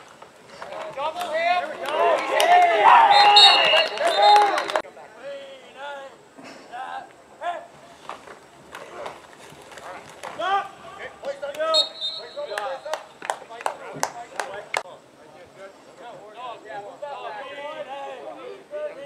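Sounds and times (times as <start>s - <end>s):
people shouting calls: 1.0s - 4.8s, 10.4s - 13.1s.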